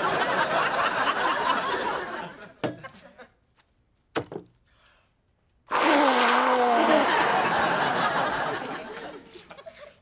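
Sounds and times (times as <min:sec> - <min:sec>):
loud nose blow into tissue: 0:05.7 - 0:07.3.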